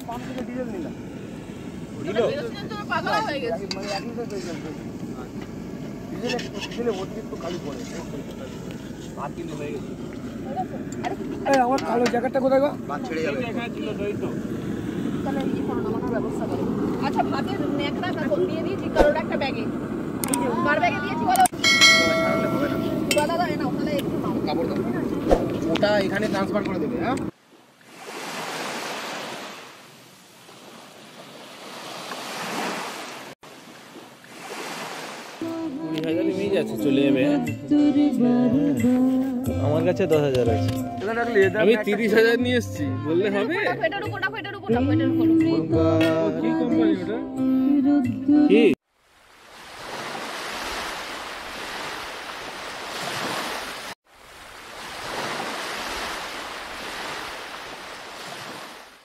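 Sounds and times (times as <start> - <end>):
sea surf breaking on beach: 20.4 - 35.6, 49.0 - 59.0.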